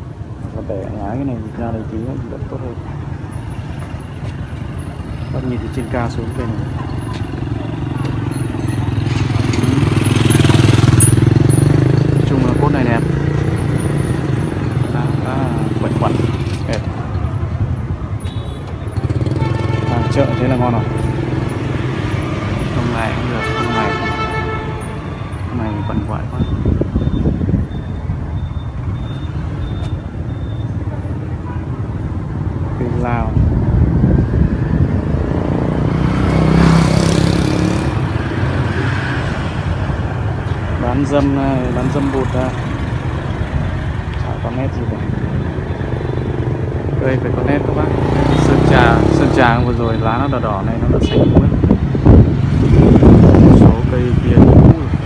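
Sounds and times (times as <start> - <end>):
indistinct voices talking: 0.0 - 52.1
vehicle engines passing: 0.0 - 55.0.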